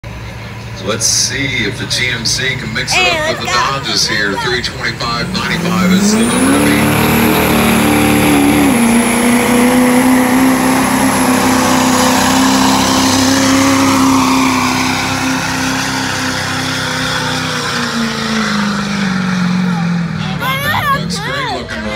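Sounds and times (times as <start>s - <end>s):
diesel truck engine at high revs: 0.0s - 21.9s.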